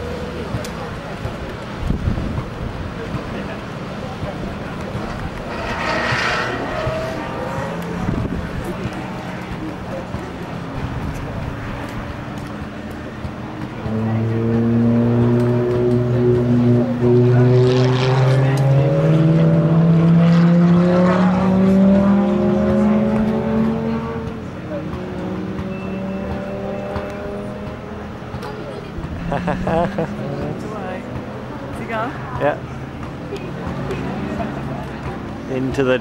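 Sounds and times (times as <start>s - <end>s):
car engine accelerating: 3.0s - 28.2s.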